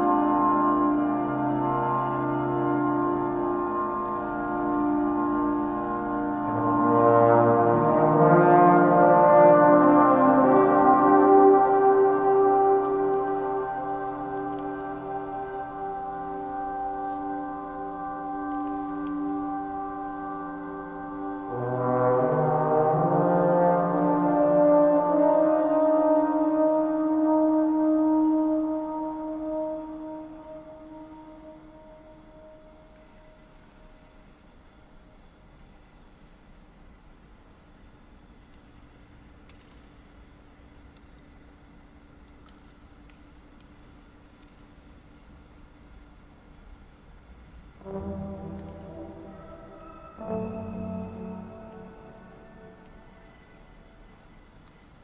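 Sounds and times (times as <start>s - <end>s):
trombone long sustained note: 0.0s - 35.0s, 47.7s - 55.0s
steady drone tones: 0.0s - 37.0s, 43.3s - 55.0s
faint low hum: 0.0s - 55.0s
low trombone note: 47.8s - 53.5s.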